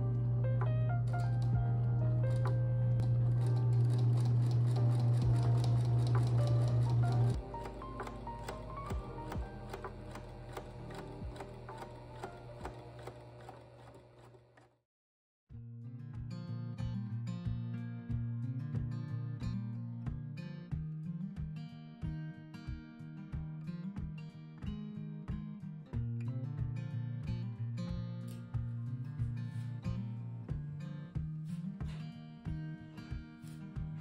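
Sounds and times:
background music: 0.0 - 13.2
electric sewing machine running: 1.0 - 14.8.

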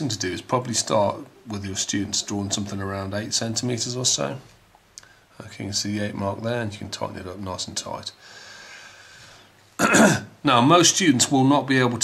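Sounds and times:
soft breath hissing out: 8.1 - 9.7
man clearing his throat: 9.8 - 10.4.

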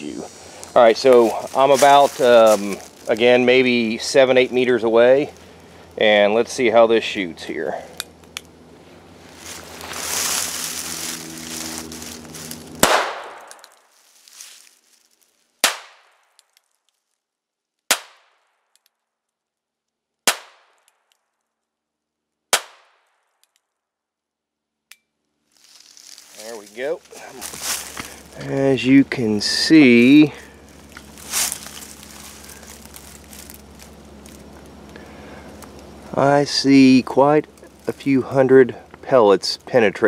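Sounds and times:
hissy rustle: 0.0 - 3.8, 8.7 - 12.7
revolver gunshots: 12.8 - 13.5.

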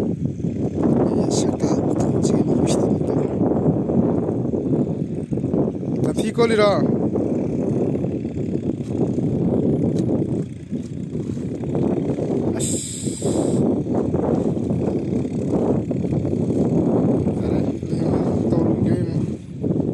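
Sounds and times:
wind buffeting microphone: 0.0 - 19.9.

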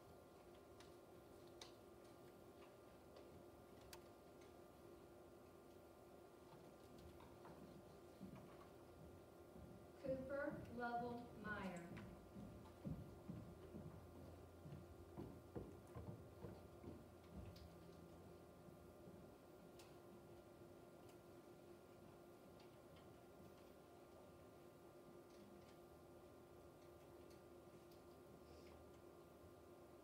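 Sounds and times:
faint steady hum: 0.0 - 30.0
faint scattered clicks: 0.3 - 4.8.

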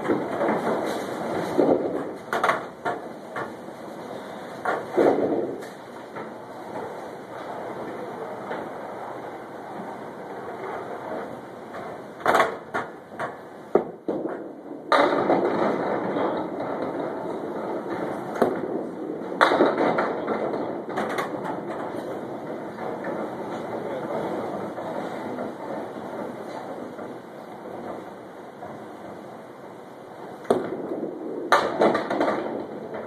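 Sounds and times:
bowling ball rolling: 0.0 - 33.0
bowling pins knocking and clacking: 0.0 - 33.0.

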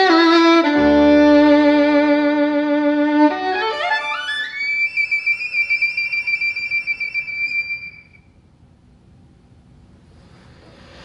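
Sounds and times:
violin playing: 0.0 - 8.0.

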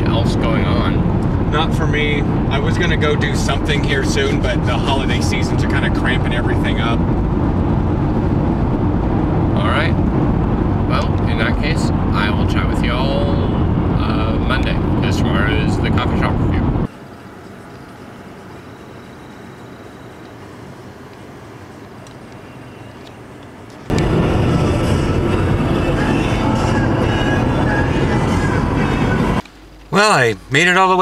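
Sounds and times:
man talking: 0.0 - 7.0, 9.6 - 10.0, 10.9 - 16.8, 29.9 - 31.0
car cabin road and engine rumble: 0.0 - 31.0.

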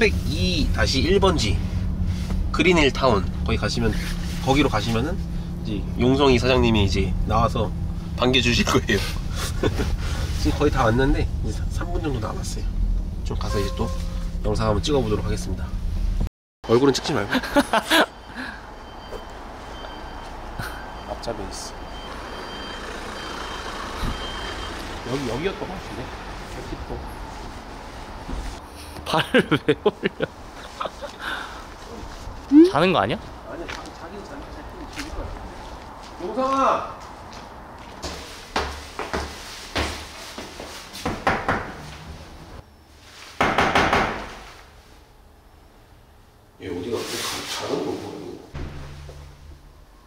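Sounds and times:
vehicle engine rumbling: 0.0 - 36.4, 41.5 - 43.0, 48.5 - 50.0
faint high-pitched tones: 13.4 - 14.3
fist knocking on door: 43.4 - 44.3.

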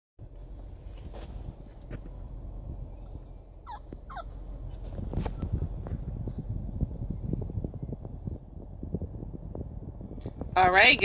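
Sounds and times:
low rumble inside car: 0.2 - 11.0
puppy whimpering: 3.6 - 4.4.

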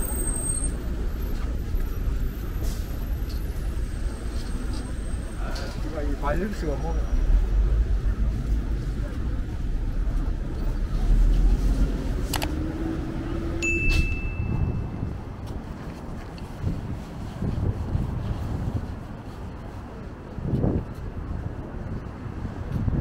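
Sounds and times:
street traffic rumble: 0.0 - 23.0
high ding: 13.6 - 14.9.

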